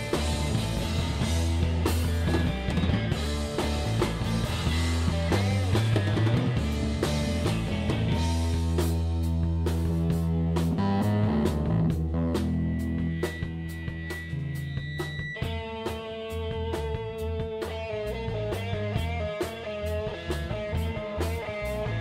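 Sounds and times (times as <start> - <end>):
bass guitar: 0.0 - 22.0
drum and cymbal hits: 0.0 - 22.0
electric guitar: 0.0 - 22.0.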